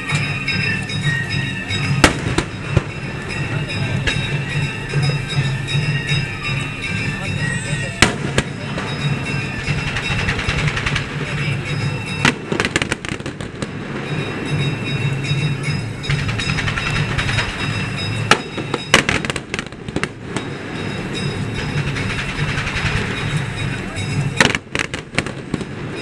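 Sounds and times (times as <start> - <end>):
music: 0.0 - 19.4, 20.0 - 26.0
crowd noise: 0.0 - 26.0
fireworks crackling: 0.0 - 26.0
fireworks bangs: 1.5 - 6.1, 6.8 - 26.0.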